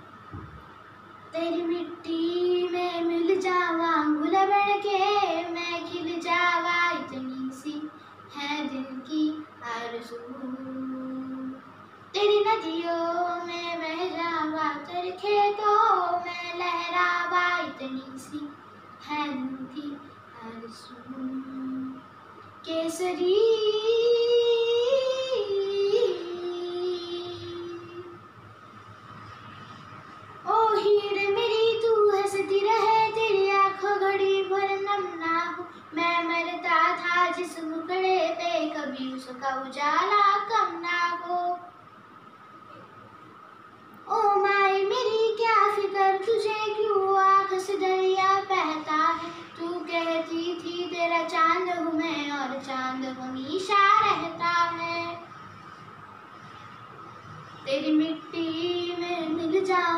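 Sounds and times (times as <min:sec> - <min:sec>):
girl singing unaccompanied: 0:00.0 - 0:28.3, 0:30.3 - 0:42.0, 0:44.0 - 0:55.6, 0:57.6 - 0:59.9
girl singing long note: 0:22.7 - 0:28.2.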